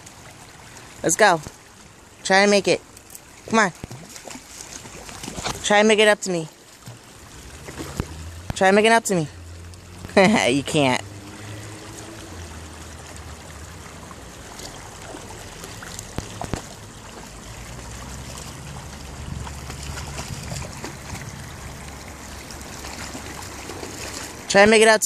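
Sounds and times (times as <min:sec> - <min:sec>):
creek water trickling: 0:00.0 - 0:25.0.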